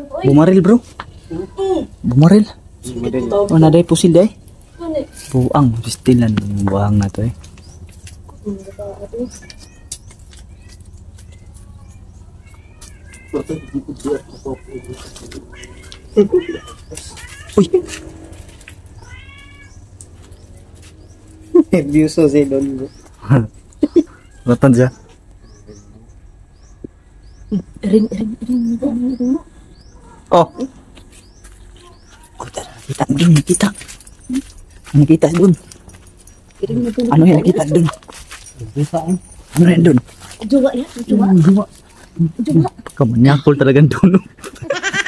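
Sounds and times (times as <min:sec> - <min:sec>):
cat meowing: 0:08.7 - 0:20.0.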